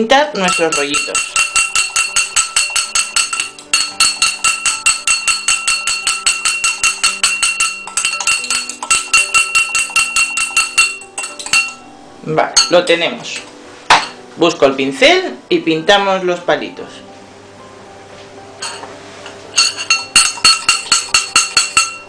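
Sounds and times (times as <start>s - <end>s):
fork clinking against glass: 0.4s - 11.9s, 12.6s - 12.9s, 18.6s - 18.9s, 19.6s - 22.0s.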